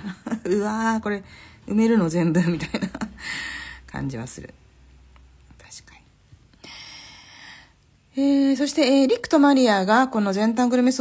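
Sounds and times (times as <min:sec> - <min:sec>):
woman breathing: 0:01.2 - 0:01.7, 0:03.2 - 0:03.9, 0:06.5 - 0:08.0.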